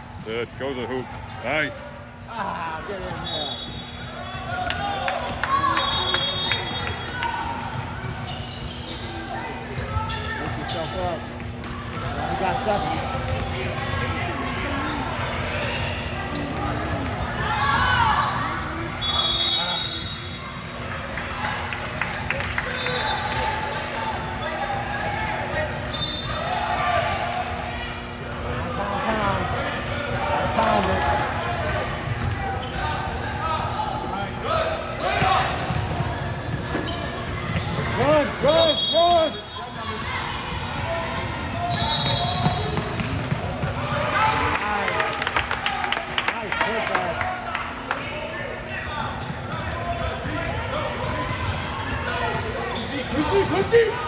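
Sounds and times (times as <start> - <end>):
people talking and shouting: 0.0 - 54.0.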